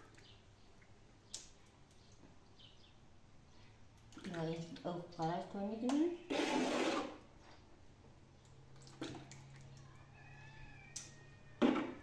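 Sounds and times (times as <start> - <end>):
liquid pouring and splashing: 8.7 - 9.8.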